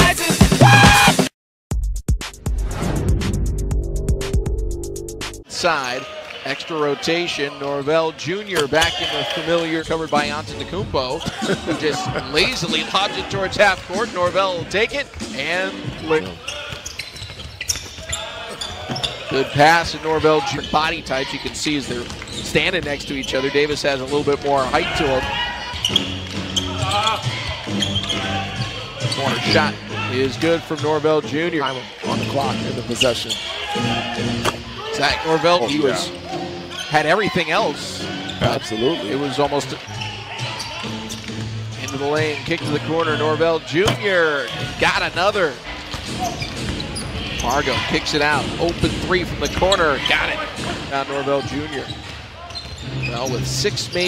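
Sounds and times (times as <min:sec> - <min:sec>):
short high shoe squeaks: 0:16.2 - 0:19.4, 0:25.7 - 0:28.5, 0:46.2 - 0:47.8, 0:51.8 - 0:54.0.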